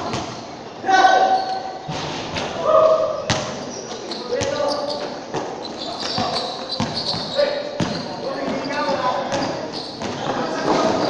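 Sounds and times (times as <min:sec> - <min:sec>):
voices calling: 0:02.6 - 0:11.0
basketball bouncing on hard floor: 0:06.2 - 0:08.6.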